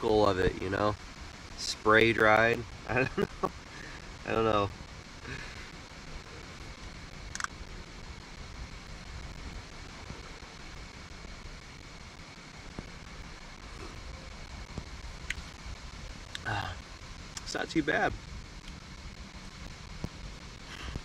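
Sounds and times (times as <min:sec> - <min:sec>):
faint high whine: 0:00.0 - 0:21.0
sharp click: 0:07.3 - 0:07.5.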